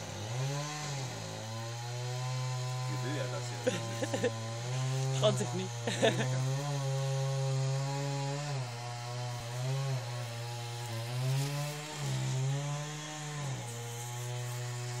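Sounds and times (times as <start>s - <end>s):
small engine running: 0.0s - 15.0s.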